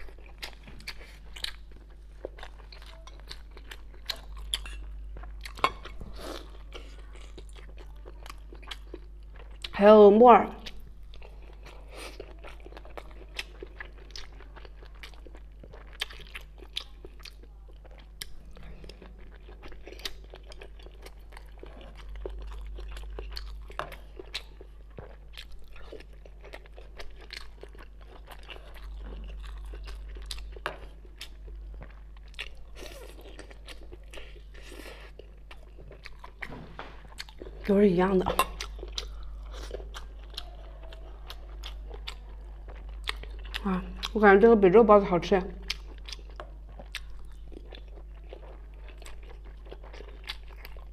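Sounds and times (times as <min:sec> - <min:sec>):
chewing and biting food: 0:00.0 - 0:09.8, 0:10.6 - 0:44.2, 0:45.6 - 0:50.9
steady low hum: 0:00.0 - 0:50.9.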